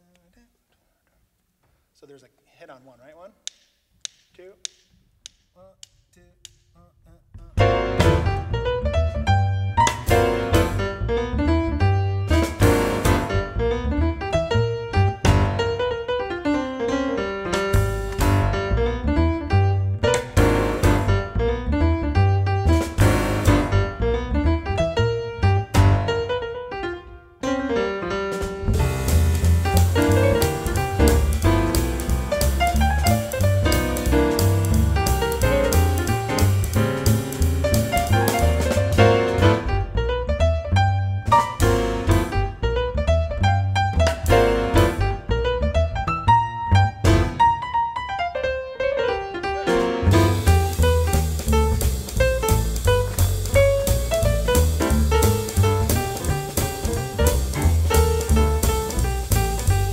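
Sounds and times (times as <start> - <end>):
jazz piano trio: 7.3 - 59.9.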